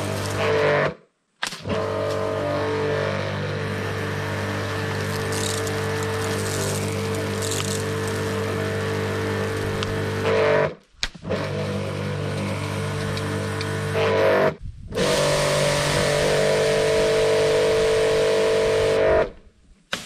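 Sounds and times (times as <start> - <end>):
pressure washer motor and pump: 0.0 - 0.9, 1.6 - 19.3.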